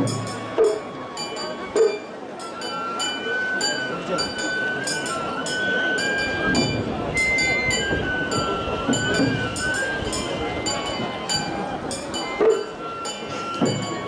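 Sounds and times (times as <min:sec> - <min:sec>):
crowd voices: 0:00.0 - 0:14.0
high flute melody: 0:00.0 - 0:14.0.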